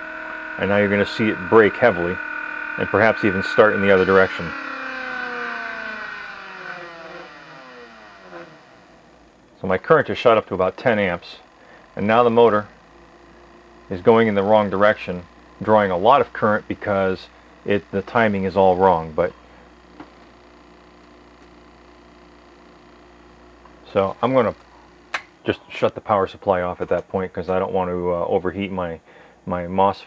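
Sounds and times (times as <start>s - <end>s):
motor whine falling in pitch: 0.0s - 27.1s
faint hum with low tones: 0.0s - 30.0s.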